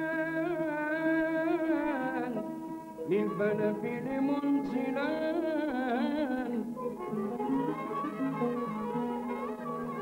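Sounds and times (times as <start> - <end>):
oud violins and mandolin ensemble: 1.9 - 10.0.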